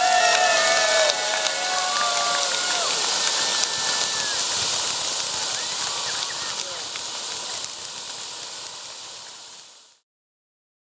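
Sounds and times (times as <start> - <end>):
spark fountains hissing: 0.0 - 10.0.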